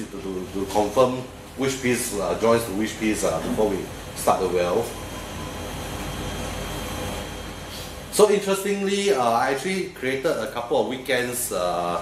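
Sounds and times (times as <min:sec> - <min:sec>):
low hum: 0:03.4 - 0:08.2.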